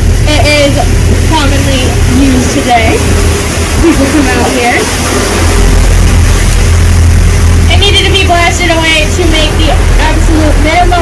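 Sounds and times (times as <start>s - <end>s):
boat engine low rumble: 0.0s - 11.0s
wind and water rushing: 0.0s - 11.0s
people talking: 0.2s - 3.0s, 3.8s - 5.0s, 7.7s - 11.0s.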